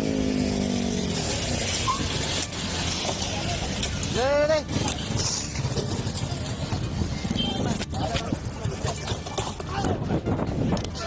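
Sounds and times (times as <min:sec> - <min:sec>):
motorcycle engines rumbling: 0:00.0 - 0:11.0
road and wind noise: 0:00.0 - 0:11.0.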